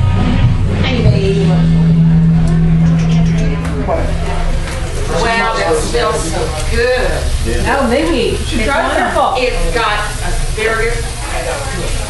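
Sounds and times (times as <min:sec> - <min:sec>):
low hum: 0:00.0 - 0:08.6
people talking: 0:00.7 - 0:12.0.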